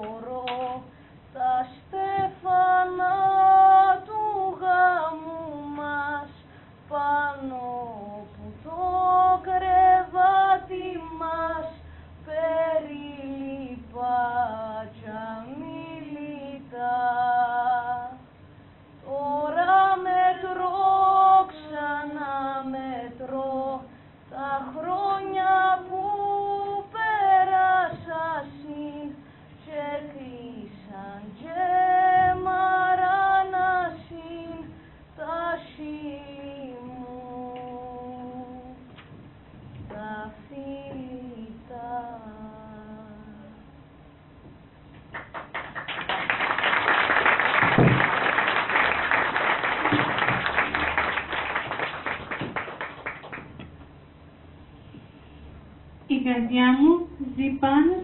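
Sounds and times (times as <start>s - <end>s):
woman singing unaccompanied: 0.0s - 18.3s, 19.0s - 39.0s, 39.8s - 43.8s, 56.1s - 58.0s.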